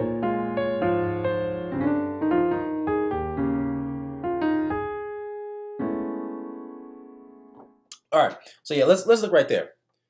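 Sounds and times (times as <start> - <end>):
piano playing jazz-gospel chords: 0.0 - 7.8.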